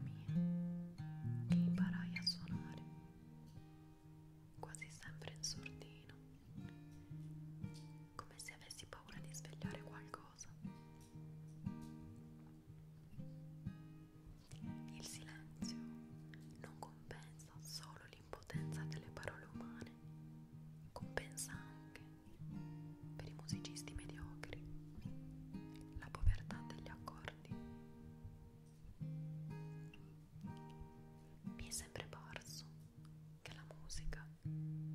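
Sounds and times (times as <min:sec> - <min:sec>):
plucked acoustic guitar: 0:00.0 - 0:33.8
person whispering: 0:01.8 - 0:02.8, 0:04.6 - 0:06.2, 0:08.2 - 0:10.6, 0:14.5 - 0:15.7, 0:16.4 - 0:20.0, 0:21.0 - 0:22.2, 0:23.2 - 0:24.7, 0:26.0 - 0:27.6, 0:31.6 - 0:32.8, 0:33.4 - 0:34.4.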